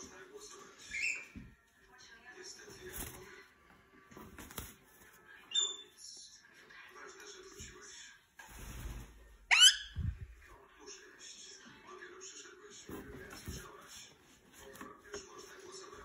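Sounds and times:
parakeet high chirp: 0.9 - 1.3, 5.5 - 5.9, 9.5 - 10.1
parakeet rustling a blanket: 2.6 - 5.4
parakeet loud squawk: 9.5 - 10.0.

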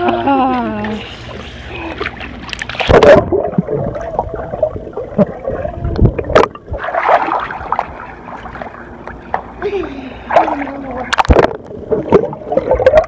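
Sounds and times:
muffled underwater gurgling: 0.0 - 8.8, 10.0 - 13.0
pool water splashing and lapping: 0.0 - 13.0.

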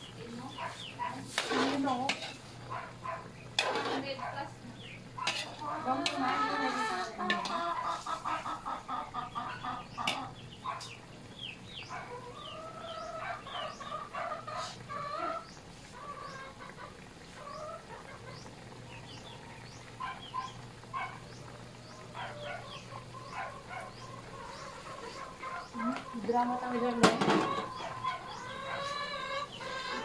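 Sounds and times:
chickens clucking: 0.0 - 30.0.

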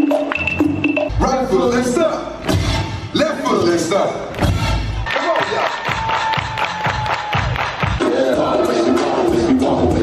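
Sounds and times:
dance music over sound system: 0.0 - 10.0.

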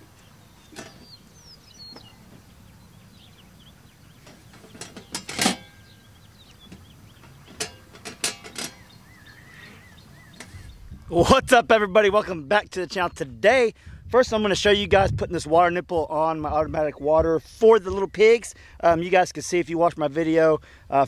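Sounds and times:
birds chirping faintly: 0.0 - 14.8, 15.6 - 21.0
metal feeder lid clanking: 0.7 - 1.1, 4.2 - 6.0, 6.6 - 9.0.

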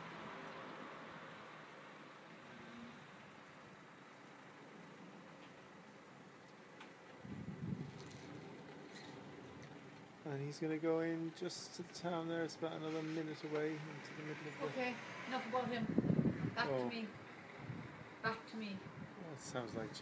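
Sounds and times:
faint outdoor background noise: 0.0 - 20.0.

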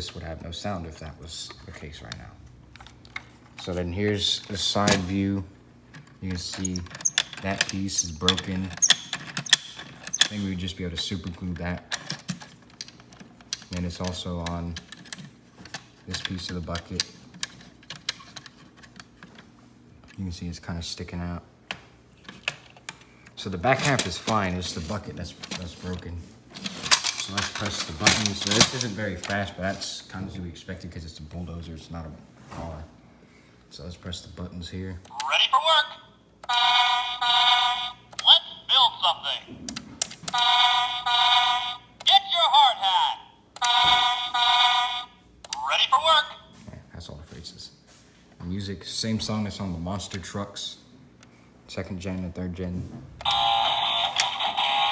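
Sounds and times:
recorded voice lines: 3.6 - 5.6, 6.2 - 9.0, 10.2 - 12.2, 13.6 - 15.0, 16.0 - 17.2, 23.4 - 26.4, 27.0 - 33.0, 33.7 - 47.8.

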